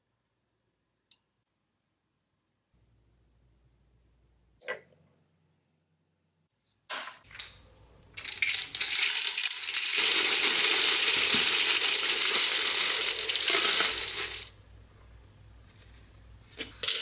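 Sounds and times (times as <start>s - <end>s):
plastic media clattering into bowl: 8.2s - 14.5s.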